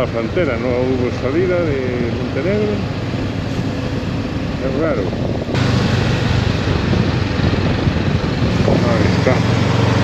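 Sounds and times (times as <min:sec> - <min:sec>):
motorcycle engine hum: 0:00.0 - 0:10.0
wind rushing over microphone: 0:00.0 - 0:10.0.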